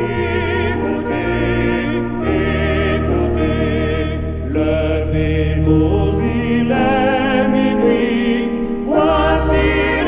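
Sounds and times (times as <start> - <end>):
choir singing held notes: 0.0 - 10.0
sustained low chords: 0.0 - 10.0.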